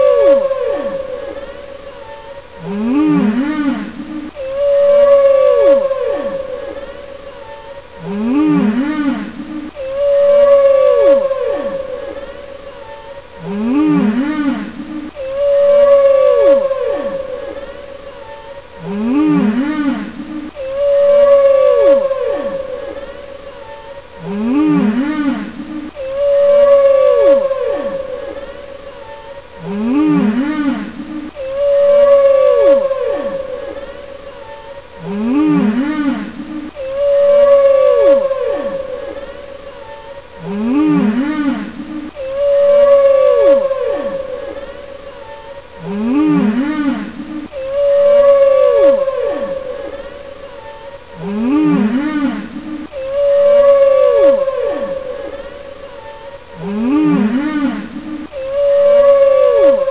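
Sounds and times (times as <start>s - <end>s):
soundtrack music with moaning calls: 0.0s - 59.9s.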